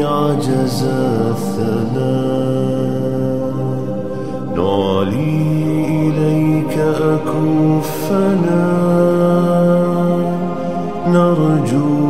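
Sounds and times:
person chanting a sung prayer: 0.0s - 12.0s.

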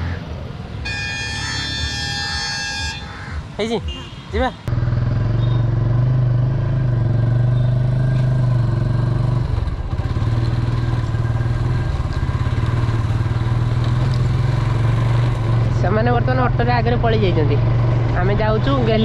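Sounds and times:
motorcycle engine running: 4.7s - 19.0s.

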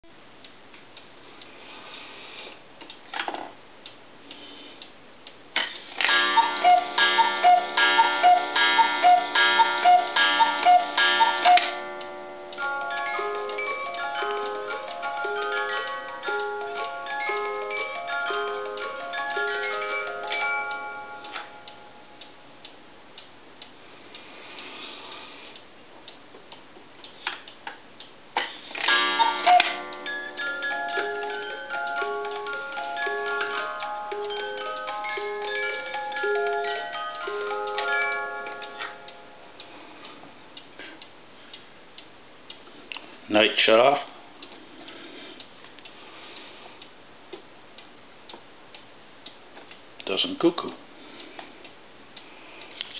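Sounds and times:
clock ticking: 3.8s - 24.3s, 25.5s - 39.7s
music box tune: 6.0s - 22.4s, 28.8s - 39.7s.

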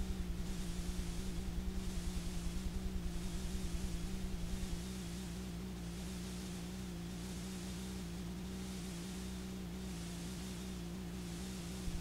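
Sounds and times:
low electrical hum: 0.0s - 12.0s
videotape static hiss: 0.0s - 12.0s.

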